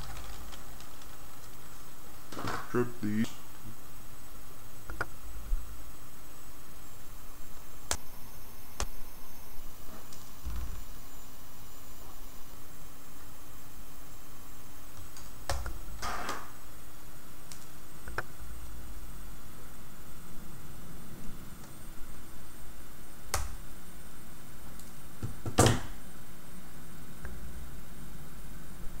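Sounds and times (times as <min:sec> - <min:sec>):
low background hiss: 0:00.0 - 0:29.0.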